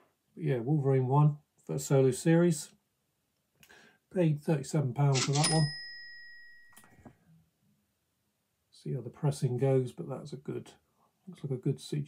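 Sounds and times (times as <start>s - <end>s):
cash register bell ring: 5.1s - 6.9s.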